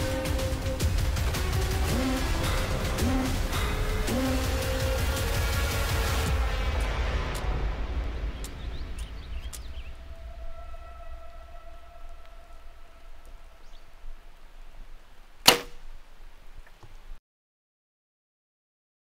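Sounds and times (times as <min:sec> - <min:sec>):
background music: 0:00.0 - 0:13.8
bow being shot: 0:15.4 - 0:16.0.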